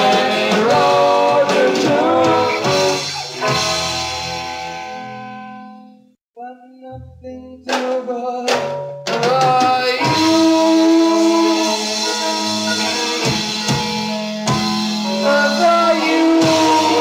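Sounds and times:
person singing: 0.0 - 3.4, 6.4 - 13.4, 15.0 - 17.0
drums: 0.0 - 5.4, 7.0 - 17.0
rock band playing: 0.0 - 6.0, 8.5 - 17.0
guitar: 0.0 - 17.0.

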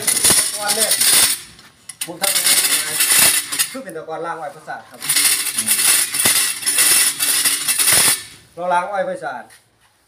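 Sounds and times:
sugarcane juicer clattering: 5.0 - 8.3.

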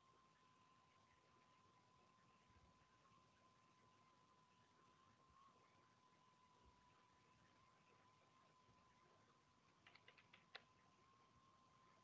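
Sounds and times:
computer keyboard key clicks: 9.8 - 10.7.

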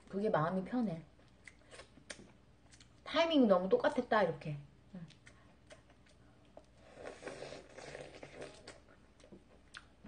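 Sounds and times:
mouth sounds of eating: 4.9 - 10.0.

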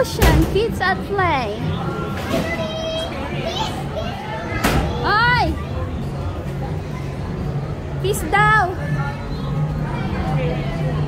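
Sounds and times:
children playing and calling out: 1.0 - 7.6.

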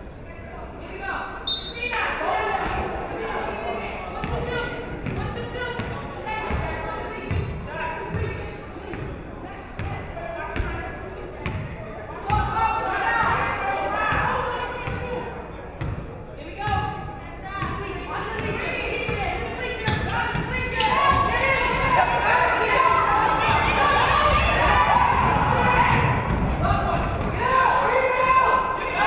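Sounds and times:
chatter of voices: 0.0 - 29.0.

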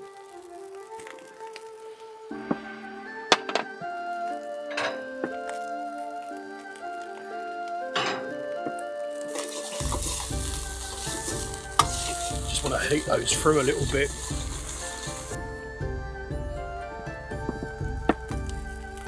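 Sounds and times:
rice sizzling in a wok: 0.0 - 3.3, 9.2 - 15.5
background music: 0.0 - 19.0.

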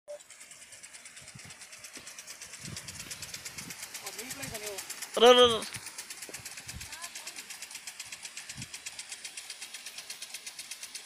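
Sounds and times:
irrigation sprinkler spray hiss: 0.1 - 11.0.

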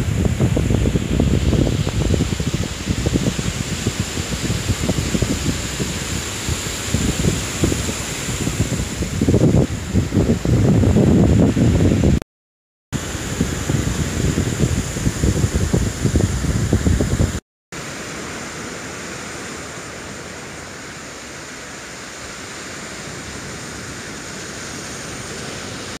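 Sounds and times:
gusty wind on microphone: 0.0 - 12.2, 13.0 - 17.4
surf and breeze hiss: 0.0 - 12.2, 13.0 - 26.0.

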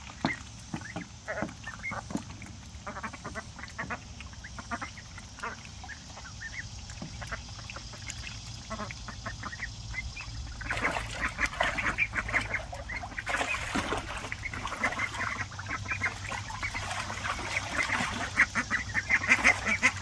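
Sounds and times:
water splashing: 0.0 - 20.0
ducks quacking: 0.2 - 20.0.

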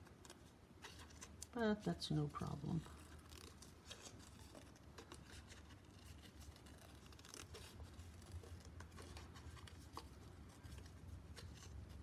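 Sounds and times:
scissors snipping paper: 3.0 - 12.0.

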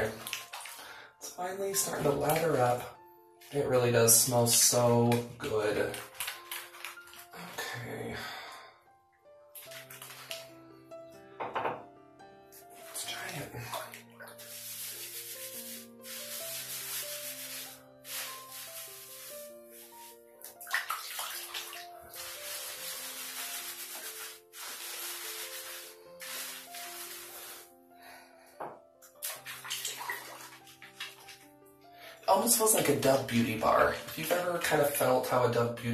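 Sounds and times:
wet hair being lathered: 0.0 - 0.8, 4.2 - 7.6, 9.6 - 10.5, 12.7 - 27.7, 29.2 - 31.5
running water: 0.0 - 2.8, 3.5 - 7.6, 9.6 - 10.5, 12.7 - 27.7, 29.2 - 31.5
slow background music: 0.0 - 35.9.

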